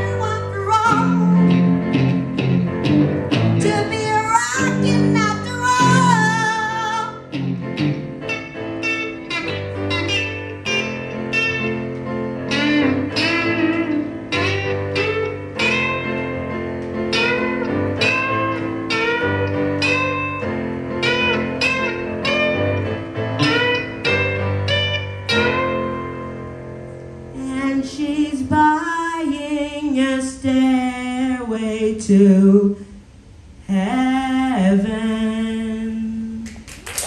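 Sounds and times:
digital piano chords: 0:00.0 - 0:27.4
bluesy electric guitar lead: 0:00.0 - 0:28.0.

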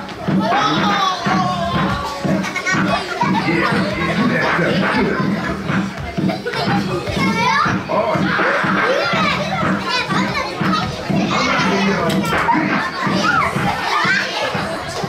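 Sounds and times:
crowd of children chattering: 0:00.0 - 0:15.0.

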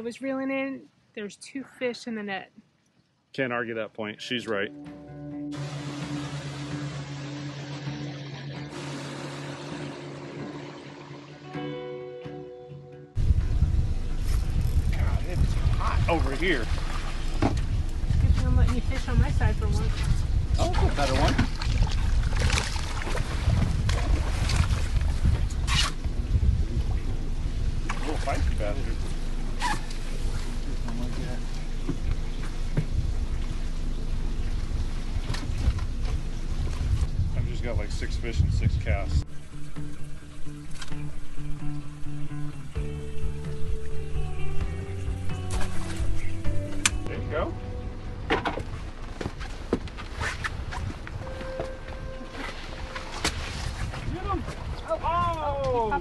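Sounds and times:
outboard motor droning: 0:05.5 - 0:12.0, 0:13.2 - 0:56.0
wind and water rushing: 0:13.2 - 0:30.8, 0:31.6 - 0:56.0.

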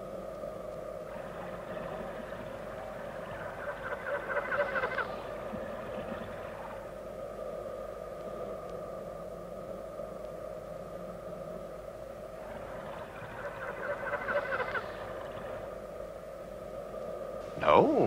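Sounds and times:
steady electronic hum: 0:00.0 - 0:18.0.

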